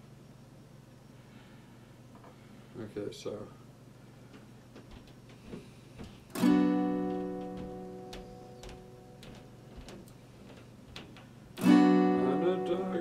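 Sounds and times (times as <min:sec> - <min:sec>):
acoustic guitar chord strum: 0:06.4 - 0:09.2, 0:11.6 - 0:13.0.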